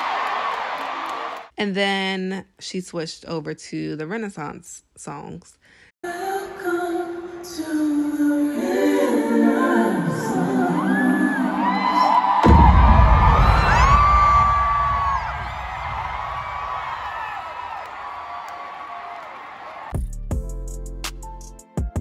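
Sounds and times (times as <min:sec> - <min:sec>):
crowd screaming and whooping: 0:00.0 - 0:01.5, 0:10.5 - 0:20.0
held sung or synth notes: 0:06.0 - 0:12.1
deep bass hit: 0:12.4 - 0:16.6.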